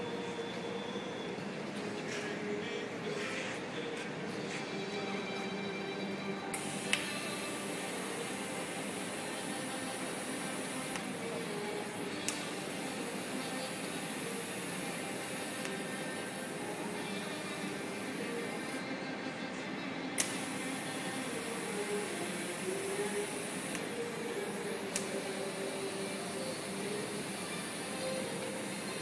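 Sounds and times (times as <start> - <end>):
welding arc restart click: 6.6 - 11.2, 12.2 - 16.6, 20.2 - 23.9, 24.8 - 29.0
welding arc hissing: 6.6 - 18.8, 20.2 - 29.0.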